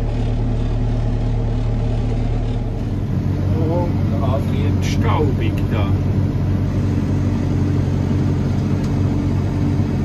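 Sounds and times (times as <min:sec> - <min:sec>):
tractor diesel engine under load: 0:00.0 - 0:10.0.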